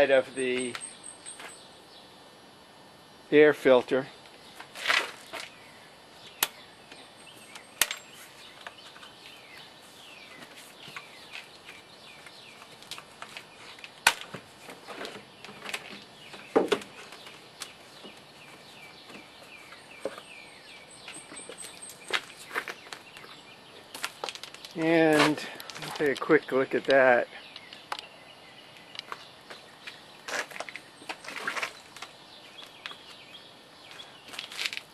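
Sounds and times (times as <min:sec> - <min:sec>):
birds chirping: 0:00.0 - 0:02.5, 0:03.2 - 0:34.9.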